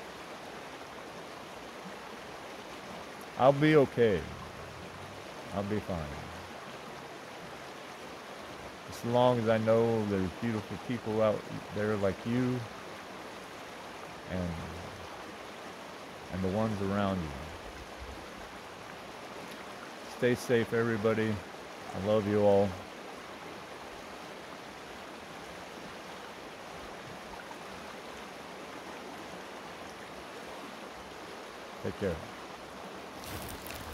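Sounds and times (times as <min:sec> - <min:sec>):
creek water rushing over rocks: 0:00.0 - 0:33.9.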